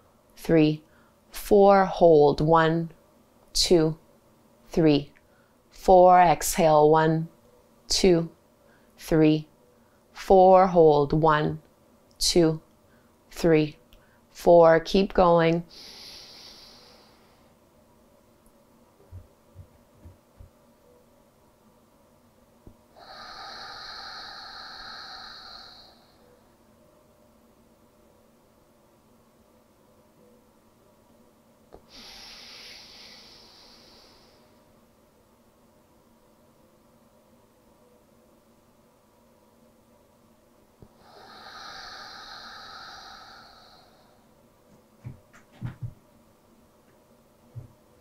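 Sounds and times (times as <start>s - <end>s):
slow exhale through nose: 15.7s - 17.5s, 23.0s - 26.3s, 31.8s - 34.6s, 40.9s - 44.3s.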